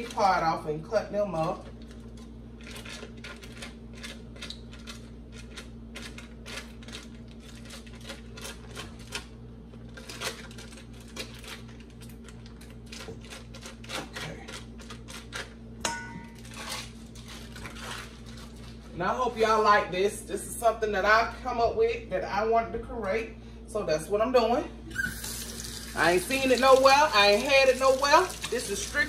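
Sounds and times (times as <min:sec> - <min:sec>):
low steady hum: 0:00.0 - 0:29.0
foil wrapper crinkling: 0:01.7 - 0:15.6, 0:16.3 - 0:19.0, 0:25.0 - 0:29.0.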